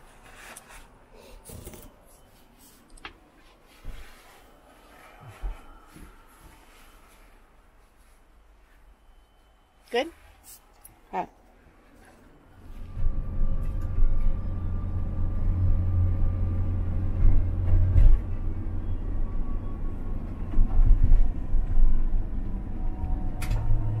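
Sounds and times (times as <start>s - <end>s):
road and engine rumble: 9.9s - 24.0s.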